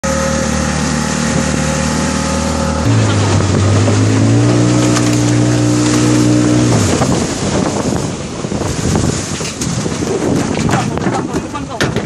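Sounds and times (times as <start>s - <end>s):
small boat engine running: 0.0s - 10.5s
river water rushing and splashing: 0.0s - 10.7s
wind on microphone: 0.6s - 12.0s.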